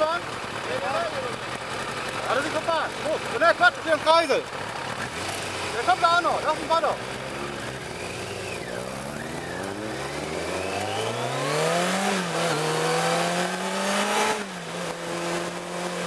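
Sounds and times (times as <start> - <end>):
car engine accelerating: 4.0 - 16.0.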